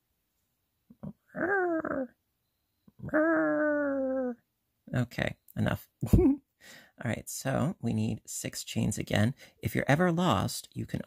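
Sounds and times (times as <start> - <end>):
wordless vocal calls: 0.9 - 2.2, 3.0 - 4.4.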